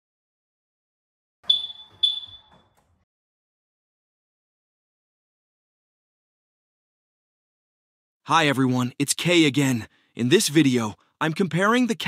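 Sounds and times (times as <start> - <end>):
car electronic chirp beeps: 1.5 - 2.6.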